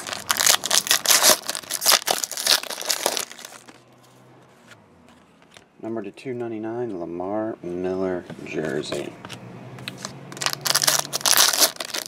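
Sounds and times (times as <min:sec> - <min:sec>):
foil wrapper crinkling and tearing: 0:00.0 - 0:03.8, 0:10.4 - 0:12.0.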